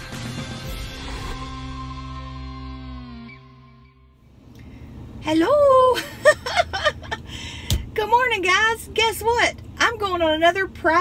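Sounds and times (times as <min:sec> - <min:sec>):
woman giggling: 0:06.0 - 0:07.4.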